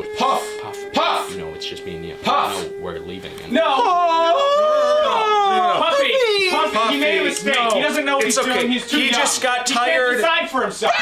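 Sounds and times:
man wailing: 0.0 - 10.2.

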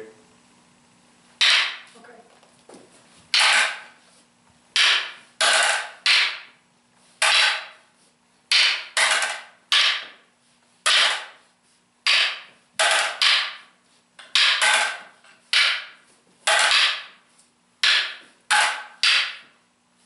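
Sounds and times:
fighting sticks clacking: 1.4 - 2.0, 2.7 - 4.0, 4.8 - 6.6, 7.2 - 7.9, 8.5 - 10.2, 10.8 - 11.4, 12.0 - 17.2, 17.8 - 19.6.

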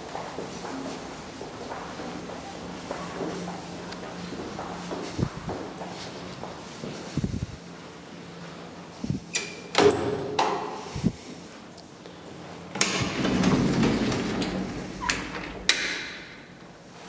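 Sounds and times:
elevator door scraping rumble: 12.7 - 15.8
latch clicks: 15.0 - 16.4.

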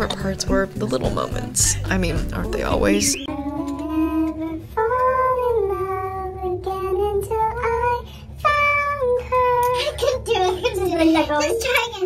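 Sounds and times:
women singing in harmony: 2.3 - 8.0.

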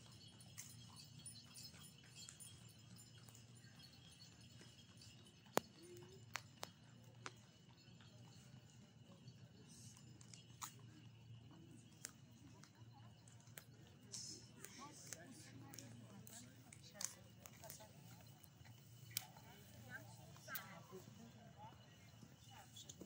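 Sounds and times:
faint distant voices: 0.4 - 23.0.

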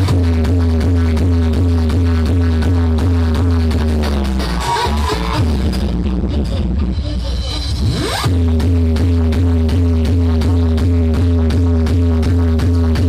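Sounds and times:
electronic dance music bass beat: 0.0 - 13.0
rising synth sweep: 4.2 - 9.8.

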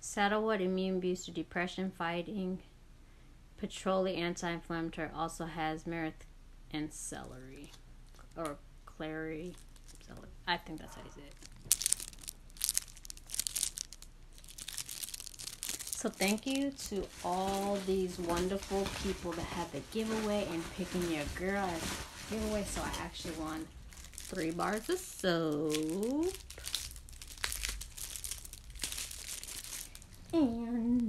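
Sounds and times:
plastic wrap crinkling: 9.4 - 10.2, 11.2 - 31.0.

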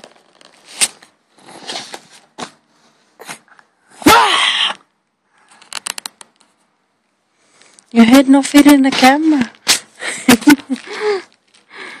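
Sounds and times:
person's breathy vocal burst: 3.2 - 4.8.

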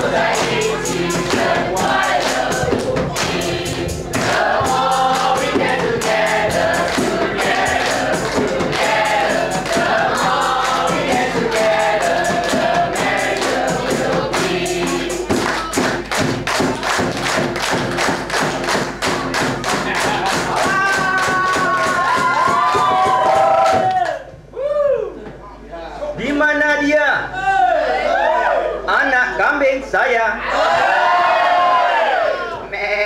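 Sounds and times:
group singing in chorus: 0.0 - 18.4
rhythmic clapping: 0.0 - 24.2.

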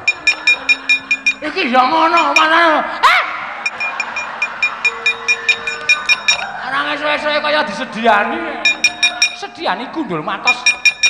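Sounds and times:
metal plates struck rhythmically: 0.0 - 6.6, 8.6 - 9.6, 10.5 - 11.0.

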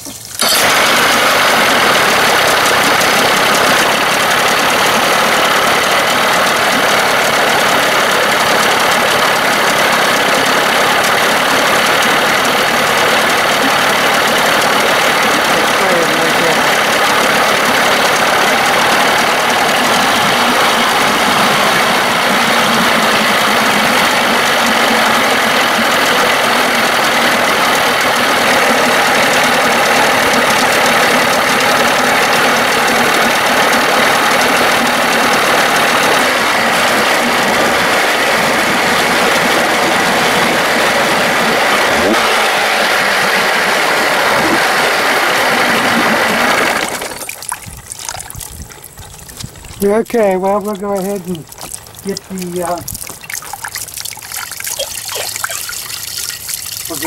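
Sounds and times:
outboard engine running: 0.0 - 57.0.

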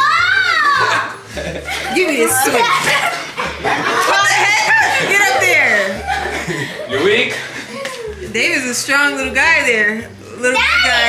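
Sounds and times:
people yelling and squealing: 0.0 - 6.3, 10.5 - 11.0
people laughing: 0.2 - 8.4.

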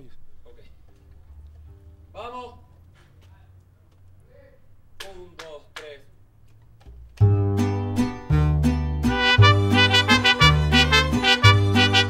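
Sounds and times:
mariachi band playing: 7.2 - 12.0.

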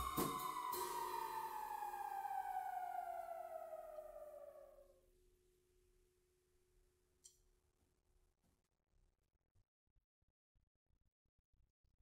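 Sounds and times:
electronic note sliding down: 0.0 - 4.8.

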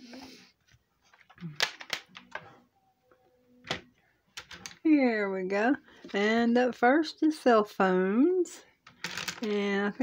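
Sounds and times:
plastic box clicks and clatters: 1.2 - 2.4.

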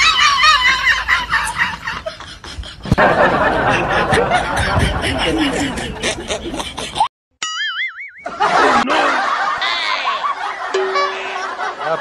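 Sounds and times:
cartoon boing effect: 7.4 - 8.2, 10.7 - 11.7.

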